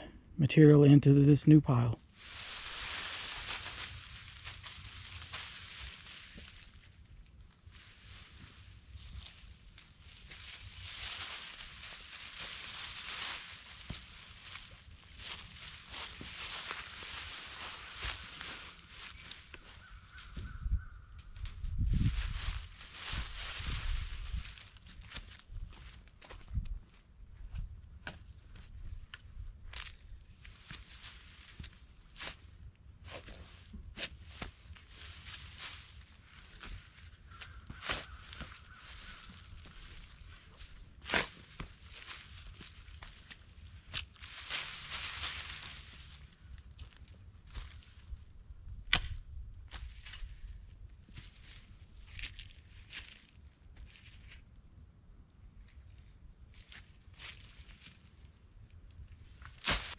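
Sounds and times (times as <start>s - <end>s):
leaves rustling and crunching: 2.0s - 26.5s, 29.6s - 48.2s, 49.7s - 54.5s, 55.6s - 59.9s
footsteps: 2.2s - 6.9s, 7.7s - 20.5s.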